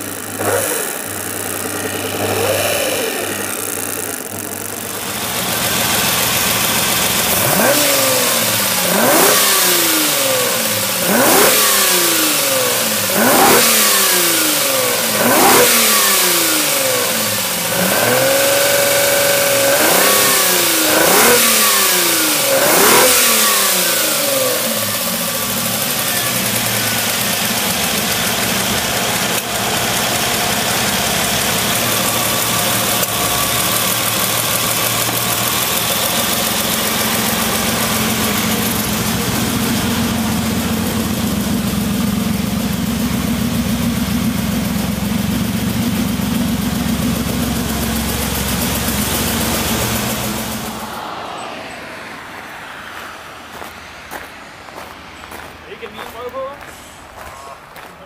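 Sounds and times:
car engine idling: 0.0 - 57.9
car engine revving: 0.0 - 57.9.

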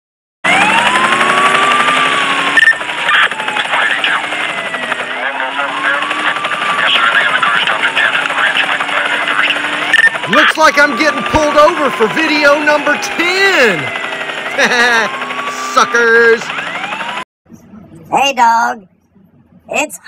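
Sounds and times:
police siren wailing: 0.4 - 17.3
helicopter rotor chop: 0.4 - 18.3.

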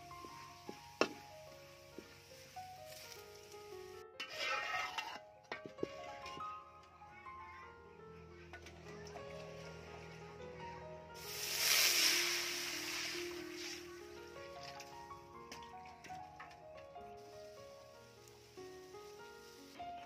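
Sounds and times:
background music: 0.0 - 20.0
water splashing into wok: 4.2 - 5.2, 11.2 - 13.9.

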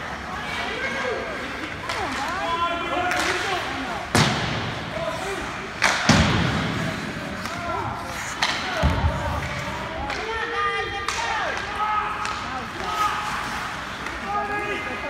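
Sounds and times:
puck banging against rink boards: 3.0 - 4.9, 5.7 - 10.3.

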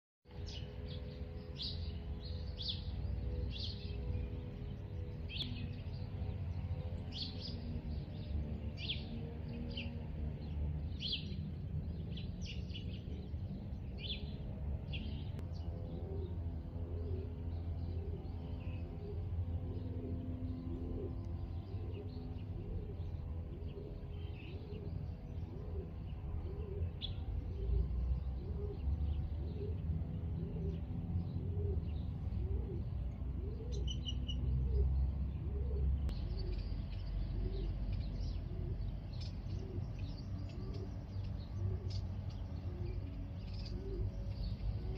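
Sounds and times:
small birds chirping: 0.3 - 44.9.

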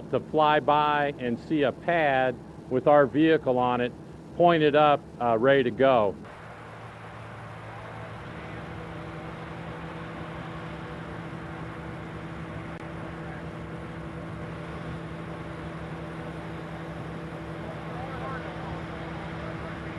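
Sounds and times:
mechanical drone: 0.0 - 19.9.

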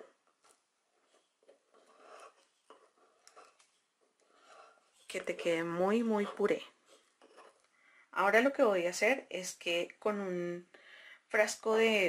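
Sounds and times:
wooden pestle scraping in mortar: 0.0 - 7.7.

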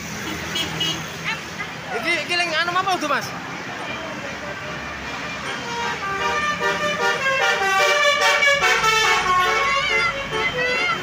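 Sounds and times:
passing traffic: 0.0 - 11.0
musical air horn tune: 5.6 - 10.9.

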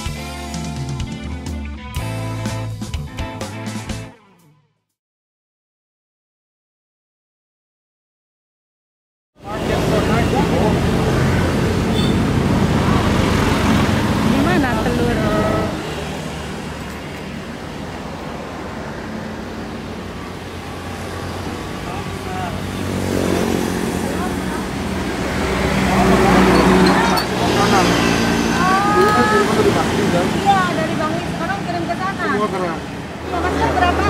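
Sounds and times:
people's voices: 9.4 - 11.5, 12.6 - 16.1, 21.8 - 34.0
loud engine rumble: 9.4 - 34.0
road traffic passing: 9.4 - 34.0.

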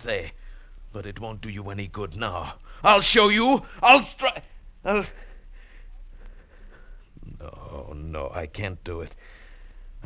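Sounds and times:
man's voice: 0.0 - 5.2
faint steady hiss: 0.0 - 10.0
low mains hum: 0.0 - 10.0.

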